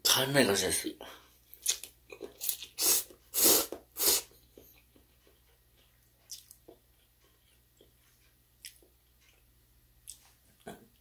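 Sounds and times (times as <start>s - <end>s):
person slurping noodles: 2.4s - 4.3s
quiet chewing: 4.3s - 11.0s.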